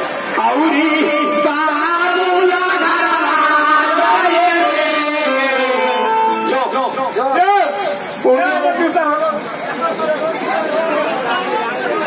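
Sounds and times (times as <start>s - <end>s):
voices talking over one another: 0.3s - 12.0s.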